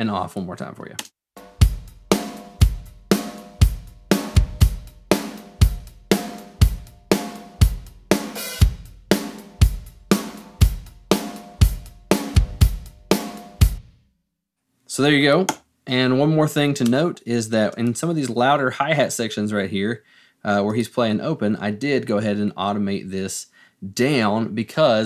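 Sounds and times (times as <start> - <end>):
hi-hat and cymbals: 1.4 - 13.8
snare drum hits: 1.5 - 7.5
kick drum: 1.6 - 13.9.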